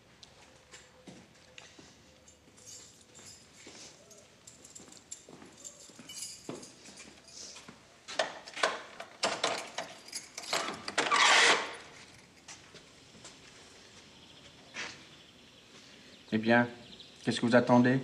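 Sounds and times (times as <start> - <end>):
metal door bolt clicking and rattling: 8.2 - 11.7.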